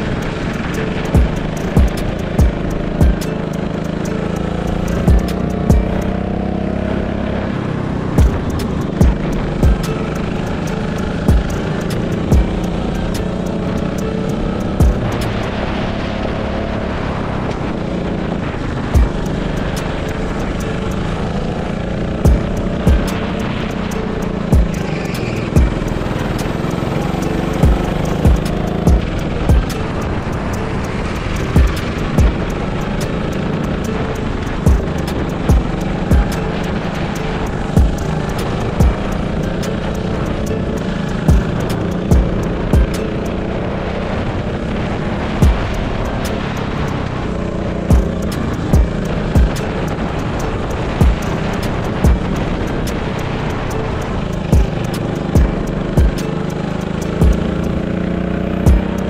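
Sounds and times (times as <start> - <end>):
drill music beat: 0.0 - 6.3, 8.0 - 15.8, 18.5 - 43.8, 44.4 - 47.2, 47.8 - 59.0
go-kart engine running: 0.0 - 59.0.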